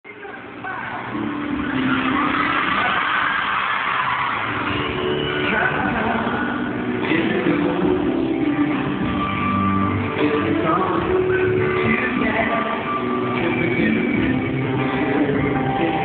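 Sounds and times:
band music and singing: 0.1 - 16.0
crowd screaming and cheering: 0.1 - 16.0.

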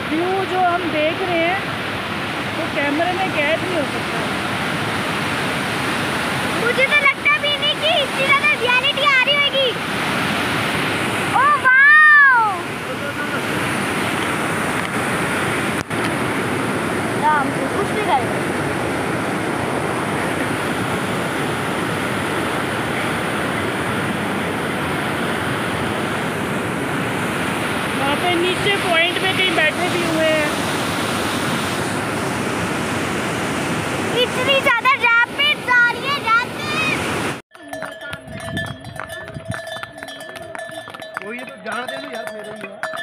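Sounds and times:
river rushing over boulders: 0.0 - 43.0
horse bells ringing and clinking: 37.5 - 43.0.

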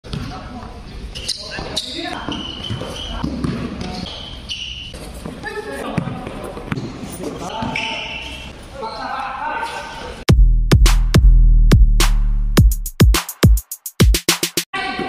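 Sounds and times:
basketball bouncing on court: 2.2 - 4.1, 5.9 - 7.0.

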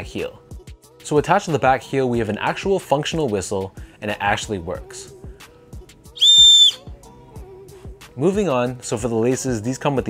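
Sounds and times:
high-pitched whistle blast: 6.2 - 6.9.

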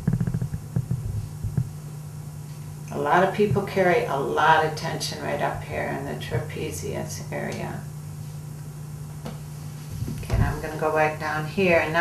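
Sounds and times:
muffled thumps and rubbing: 0.0 - 1.8, 3.4 - 3.8, 9.1 - 10.8
low electrical hum: 0.0 - 12.0.

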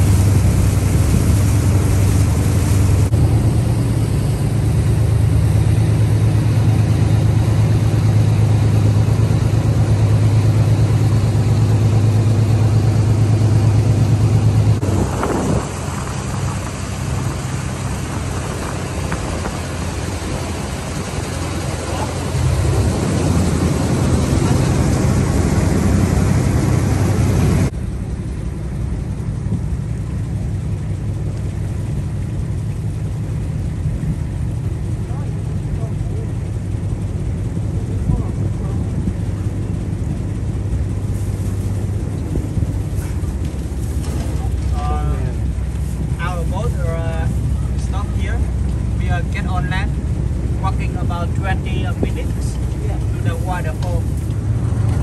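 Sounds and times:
boat engine drone: 0.0 - 55.0
water rushing: 0.0 - 55.0
wind: 0.0 - 55.0.

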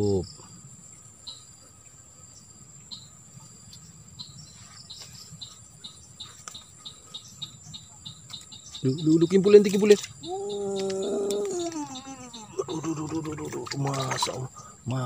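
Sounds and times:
insects trilling high-pitched: 0.0 - 15.0.

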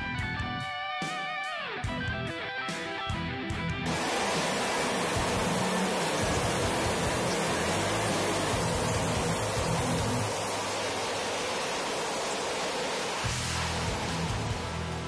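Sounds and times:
jet engine at full afterburner: 3.9 - 15.0.

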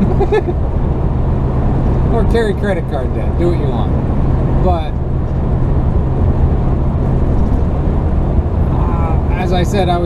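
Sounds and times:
engine and tyre rumble: 0.0 - 10.0.

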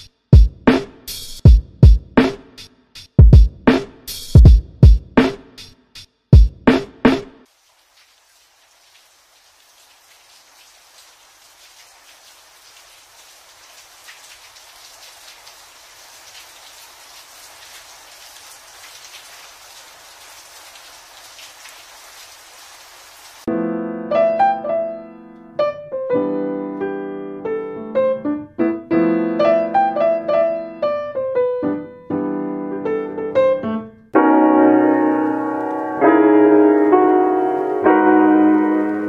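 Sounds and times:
piano music: 23.5 - 39.0.

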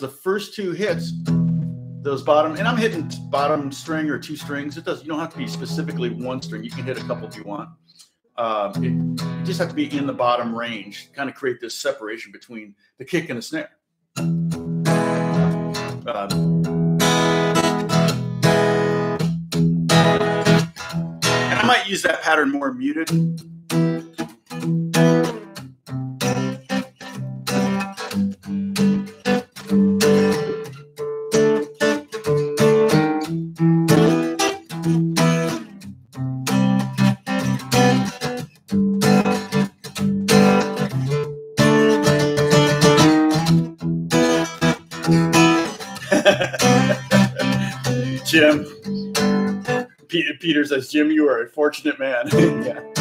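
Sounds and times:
acoustic guitar strumming: 1.1 - 7.6, 8.7 - 11.0, 14.2 - 22.2, 23.1 - 50.6, 52.3 - 53.0.

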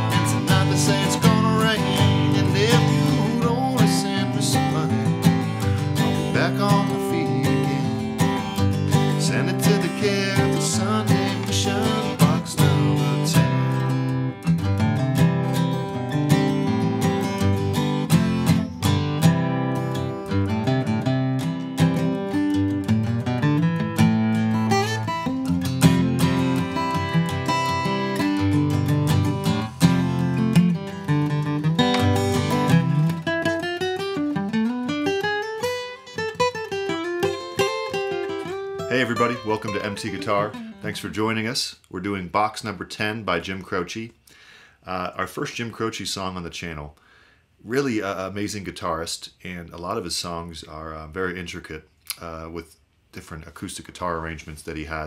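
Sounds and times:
acoustic guitar playing: 0.0 - 41.5.

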